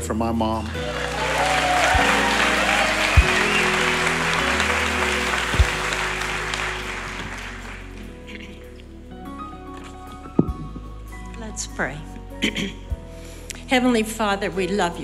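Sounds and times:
soft background music: 0.0 - 15.0
congregation applauding: 0.4 - 8.5
low thumps: 10.4 - 11.0.

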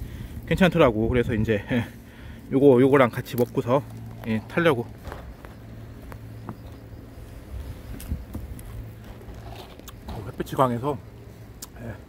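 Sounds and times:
street traffic hum: 0.0 - 12.0.

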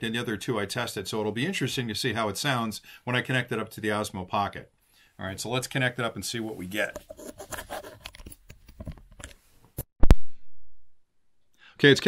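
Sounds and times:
microphone plug handling scratching: 6.8 - 9.9.

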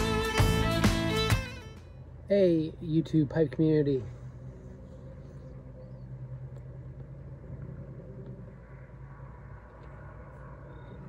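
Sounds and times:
constant low hum: 0.0 - 11.0
low rumble: 4.0 - 11.0.

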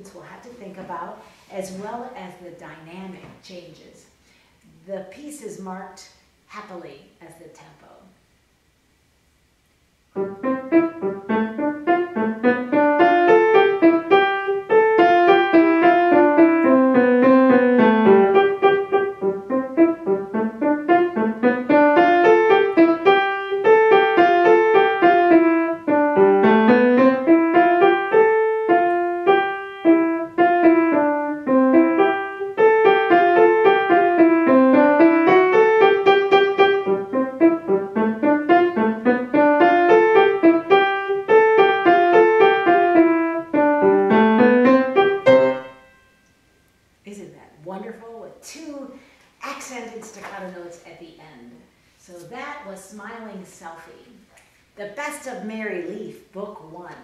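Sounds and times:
cheerful grand piano solo: 10.2 - 46.0.

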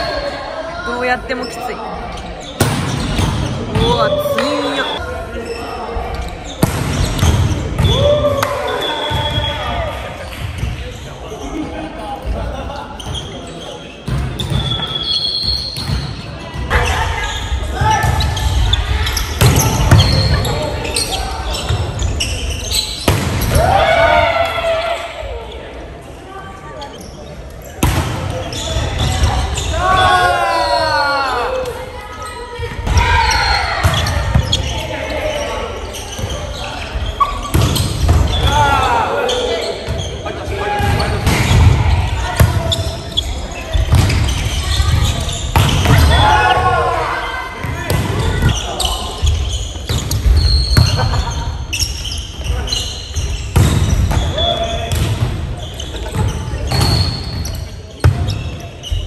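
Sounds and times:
players shouting: 3.6 - 5.1, 44.1 - 49.5
ball bouncing on court floor: 43.8 - 46.2, 47.6 - 48.6, 53.5 - 55.4.

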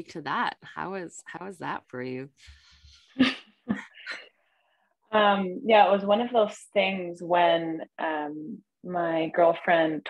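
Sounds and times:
woman laughing: 3.2 - 4.2.

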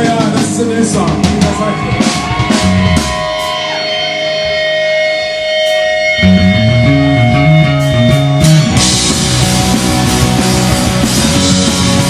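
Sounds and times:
drum hits: 0.0 - 3.6, 8.4 - 12.0
live pop-punk band: 0.0 - 12.0.

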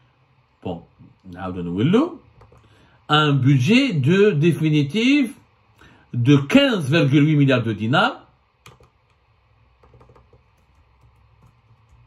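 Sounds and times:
faint typing on computer keyboard: 2.4 - 2.8, 8.6 - 12.0.

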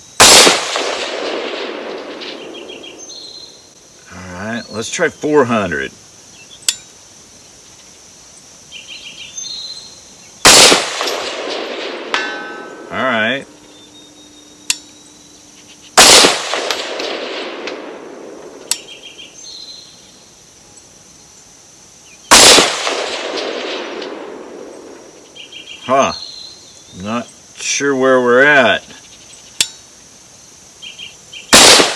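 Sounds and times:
crickets chirring: 0.0 - 31.9
rifle shots echoing: 0.2 - 3.6, 10.4 - 13.6, 16.0 - 19.1, 22.3 - 25.2, 31.5 - 31.9.

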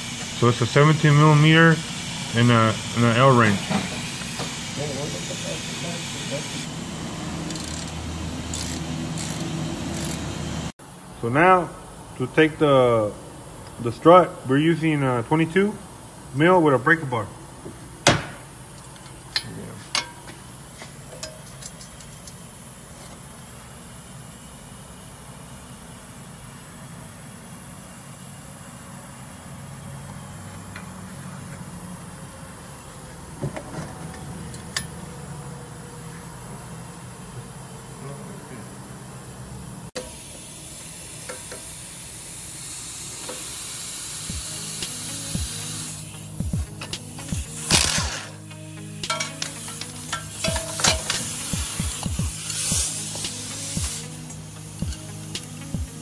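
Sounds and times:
hiss: 0.0 - 10.7, 40.0 - 56.0.

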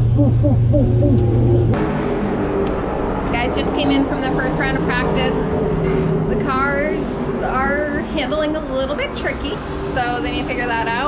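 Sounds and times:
low mechanical drone: 0.0 - 11.0
woman talking: 3.3 - 5.6, 6.3 - 11.0.

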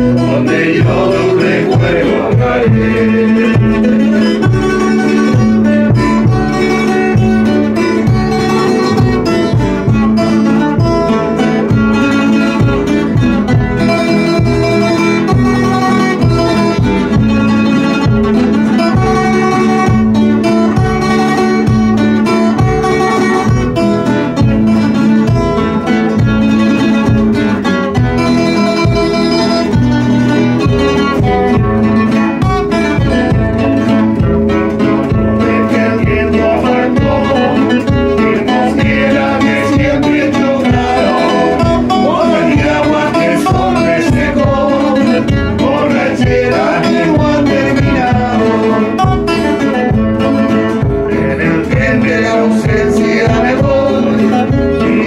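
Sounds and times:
bass drum beaten with mallet: 0.0 - 55.0
guitars strummed and plucked: 0.0 - 55.0.

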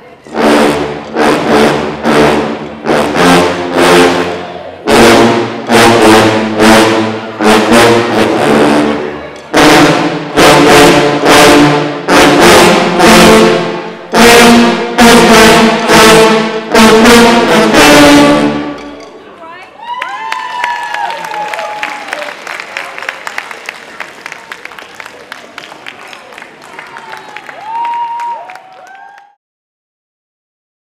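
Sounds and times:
sousaphone ensemble playing chords: 0.3 - 19.0.

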